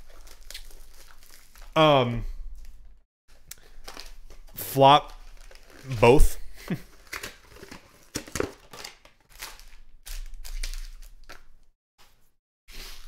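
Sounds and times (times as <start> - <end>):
cardboard and wrappers crinkling: 0.0 - 1.8, 2.6 - 6.2, 6.8 - 11.6.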